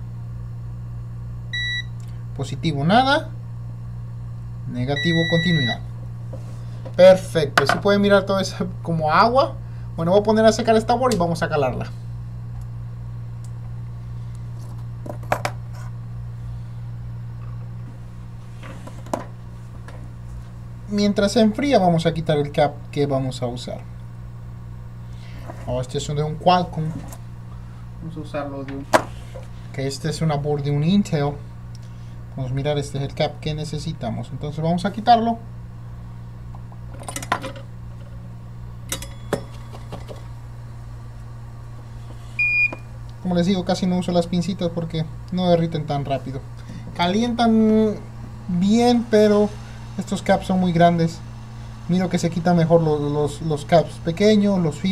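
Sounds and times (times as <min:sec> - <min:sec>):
low electrical hum: 0:00.0 - 0:54.9.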